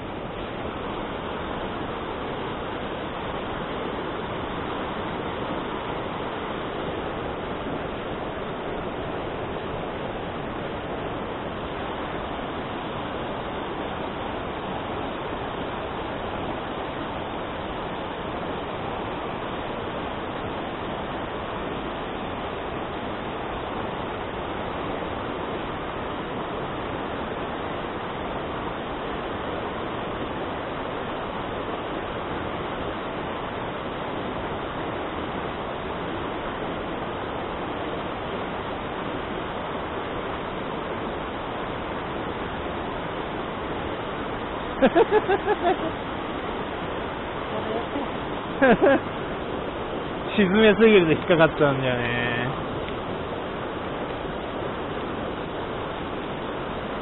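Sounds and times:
stream rushing over rocks: 0:00.0 - 0:57.0.

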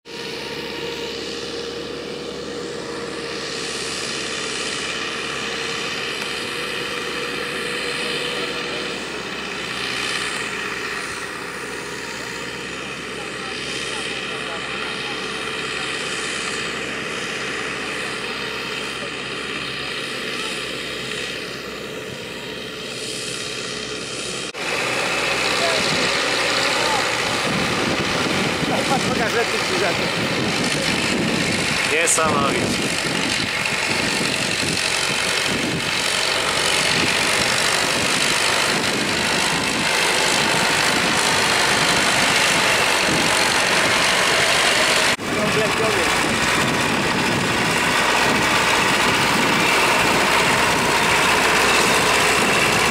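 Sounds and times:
combine harvester engine: 0:00.0 - 0:52.9
steady whine: 0:00.0 - 0:52.9
tractor diesel engine under load: 0:00.0 - 0:52.9.

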